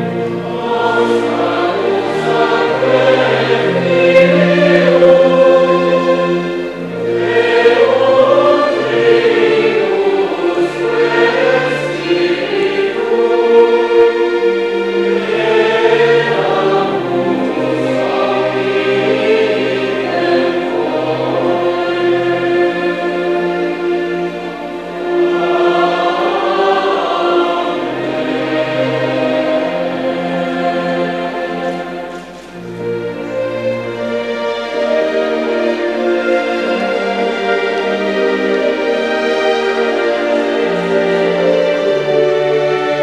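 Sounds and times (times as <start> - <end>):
choir singing liturgical music: 0.0 - 43.0.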